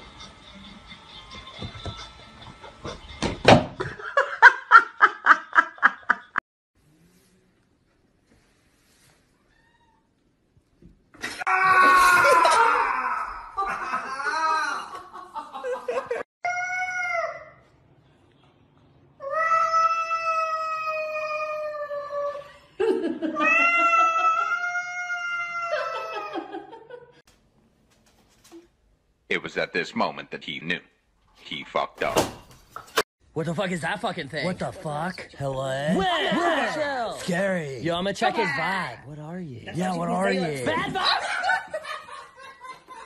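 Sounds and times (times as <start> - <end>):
cat yowling: 23.4 - 26.4.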